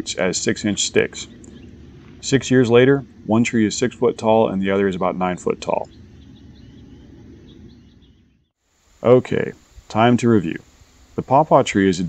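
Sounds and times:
low background rumble: 0:00.0 - 0:10.7.

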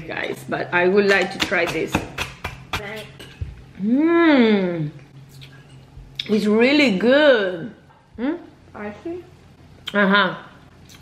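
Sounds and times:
person humming mmm: 0:03.8 - 0:05.0.

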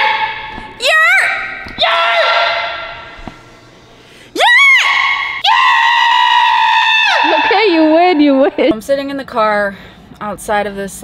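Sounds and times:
echoing yelling and shrieking: 0:00.0 - 0:03.2, 0:04.4 - 0:08.4.

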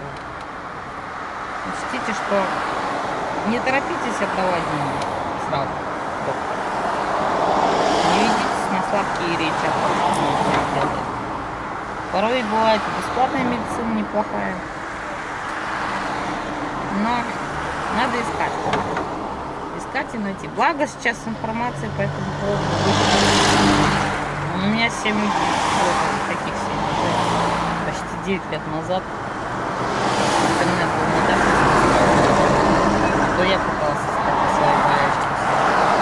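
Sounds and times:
car engine hum: 0:00.0 - 0:36.0
road and traffic noise: 0:00.0 - 0:36.0.

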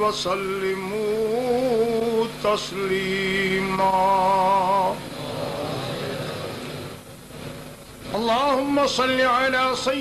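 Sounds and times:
steady background noise: 0:00.0 - 0:10.0.

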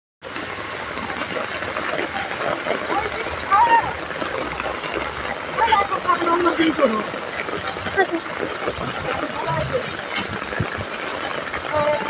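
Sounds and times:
heavy rain on pavement: 0:00.2 - 0:12.0.

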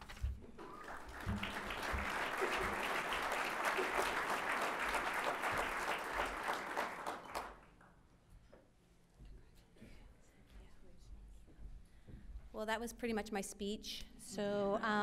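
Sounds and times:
audience applause: 0:00.6 - 0:07.7.

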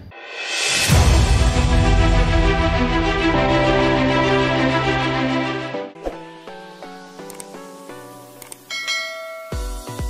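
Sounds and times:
bright bell ding: 0:08.7 - 0:09.9.

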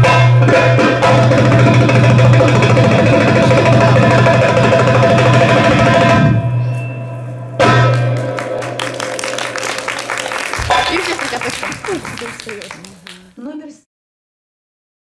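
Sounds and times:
goblet hand drum playing: 0:00.0 - 0:06.2, 0:10.6 - 0:12.0.

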